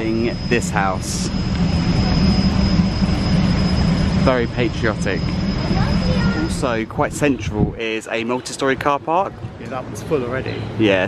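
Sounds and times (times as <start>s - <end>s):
high whine: 0.0s - 11.0s
machine low drone: 0.0s - 11.0s.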